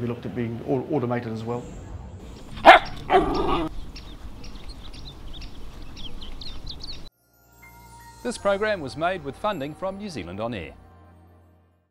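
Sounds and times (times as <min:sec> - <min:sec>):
dog barking: 0:02.6 - 0:03.7.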